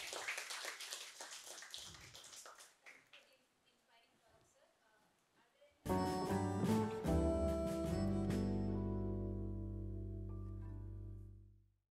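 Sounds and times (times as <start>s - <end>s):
audience applauding: 0.0s - 3.1s.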